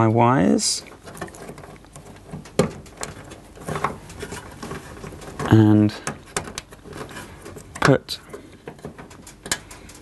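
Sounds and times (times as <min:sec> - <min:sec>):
hands rustling wires: 0:00.0 - 0:10.0.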